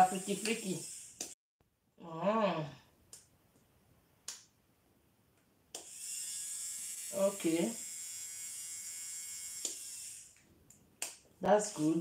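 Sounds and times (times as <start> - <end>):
nail drill motor buzzing: 0.0 - 1.4, 5.8 - 10.4
person humming: 2.0 - 2.9.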